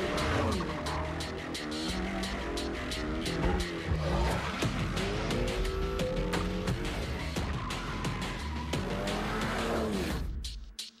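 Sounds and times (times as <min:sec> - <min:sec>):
car engine revving: 0:00.0 - 0:10.2
music with steady beat: 0:00.0 - 0:11.0.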